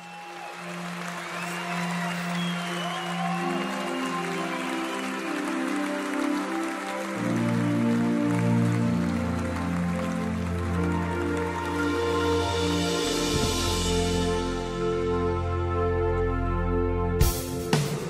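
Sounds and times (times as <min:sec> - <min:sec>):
crowd noise: 0:00.0 - 0:11.7.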